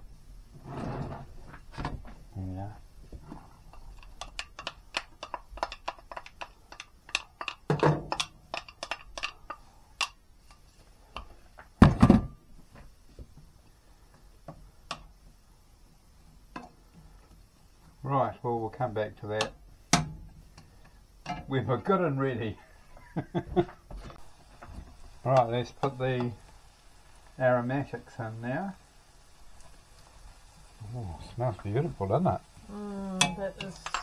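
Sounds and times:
onion frying and crackling: 0:00.0 - 0:34.0.

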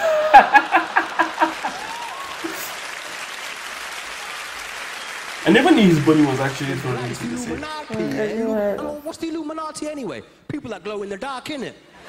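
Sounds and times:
audience applauding: 0:00.0 - 0:08.3.

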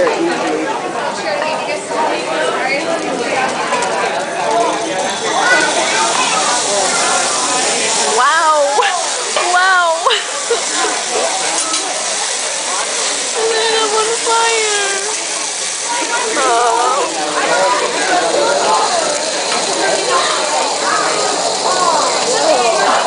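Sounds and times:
restaurant chatter: 0:00.0 - 0:23.0
vegetables sizzling on a griddle: 0:02.4 - 0:23.0
diners exclaiming: 0:04.4 - 0:23.0.

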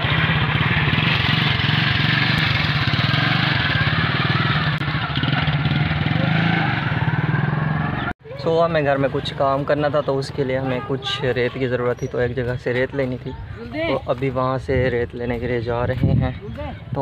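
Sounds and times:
motorcycle engine running: 0:00.0 - 0:10.8.

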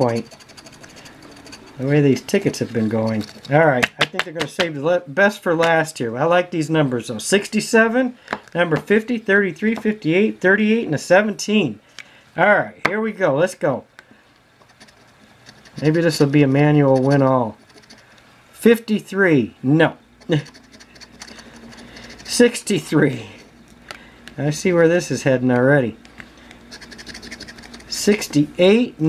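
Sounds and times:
coin scraping lottery ticket: 0:00.0 - 0:03.6, 0:14.7 - 0:18.1, 0:20.2 - 0:23.5, 0:26.7 - 0:28.4.

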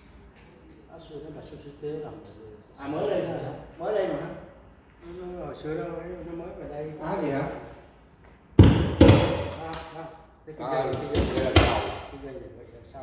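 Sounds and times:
loud thumps and knocks: 0:08.6 - 0:09.6.

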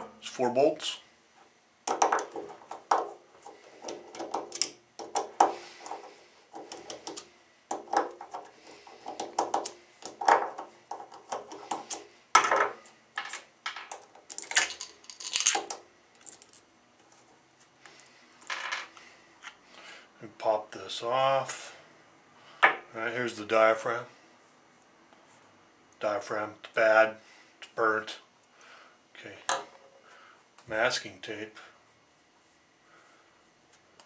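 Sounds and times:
bolts set down on wooden bench: 0:12.4 - 0:14.0.

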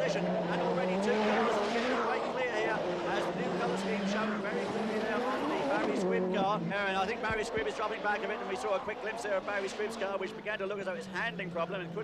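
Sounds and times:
race car engines revving: 0:00.0 - 0:12.0.

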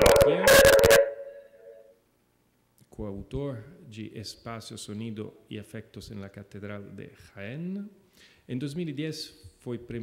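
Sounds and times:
man's voice: 0:00.0 - 0:01.0
ringing tail of loud noise: 0:00.0 - 0:01.9.

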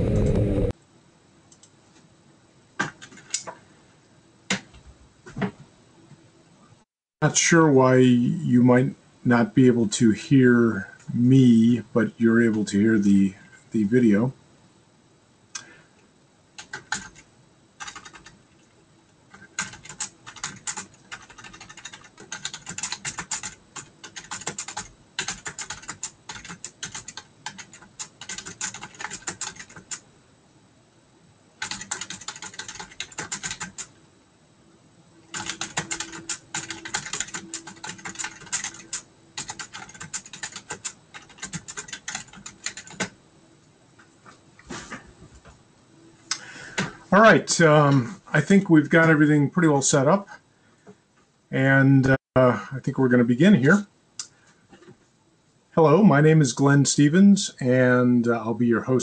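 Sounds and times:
computer keyboard typing: 0:16.6 - 0:18.4, 0:19.3 - 0:30.0, 0:31.6 - 0:33.9, 0:35.3 - 0:43.2.

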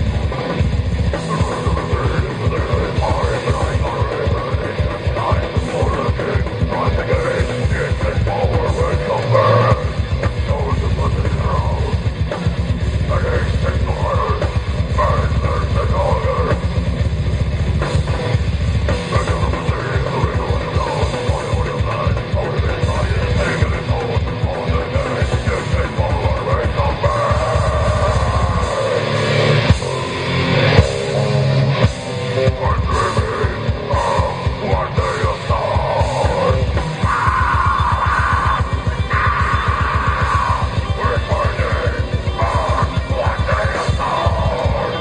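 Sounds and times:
death metal band playing live: 0:00.0 - 0:45.0
distorted electric guitars: 0:00.0 - 0:45.0
rapid bass drum beats: 0:00.0 - 0:45.0
screamed vocal: 0:13.0 - 0:16.7, 0:19.0 - 0:45.0.

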